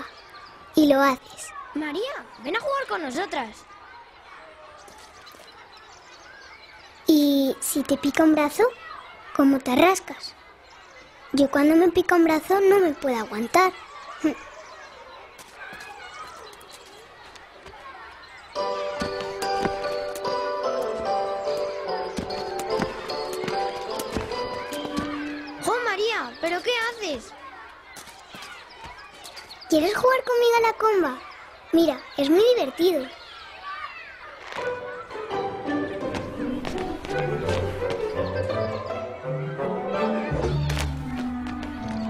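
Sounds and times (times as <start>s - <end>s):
soft bird chirps: 0.0s - 8.2s, 13.7s - 35.1s
faint outdoor ambience: 0.0s - 42.0s
background music with held notes: 18.6s - 25.7s, 34.7s - 42.0s
shoes landing: 18.8s - 25.7s, 36.1s - 38.1s, 40.6s - 42.0s.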